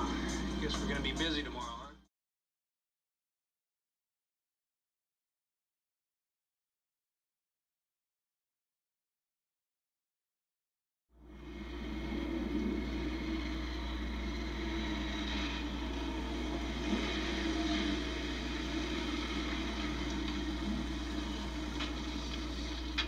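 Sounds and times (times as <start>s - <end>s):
motorcycle engines rumbling: 0.0s - 1.8s, 11.4s - 23.0s
constant low hum: 0.0s - 2.0s, 11.2s - 23.0s.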